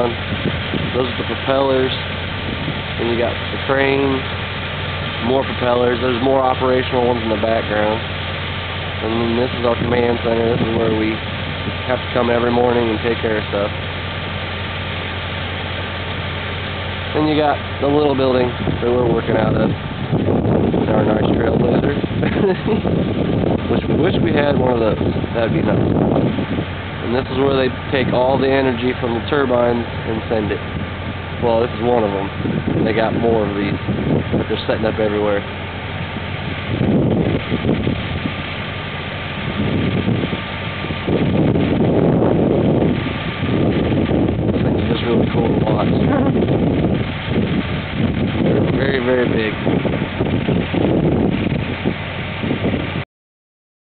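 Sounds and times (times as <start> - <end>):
vehicle engine idling: 0.0 - 52.8
steady low hum: 0.0 - 53.0
wind rumbling on microphone: 0.0 - 53.0.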